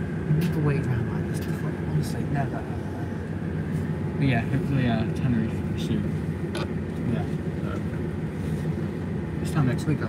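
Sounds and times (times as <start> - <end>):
train carriage rumble: 0.0 - 10.0.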